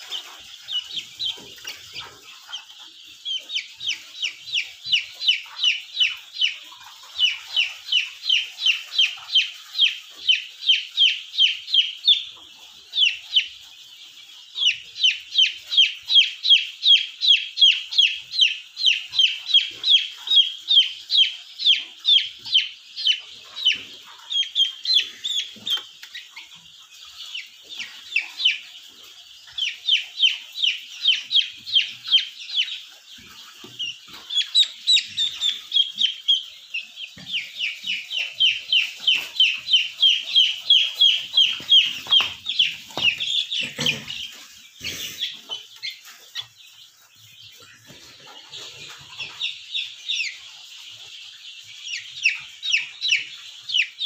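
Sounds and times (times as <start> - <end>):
chick peeping: 0.0 - 54.0.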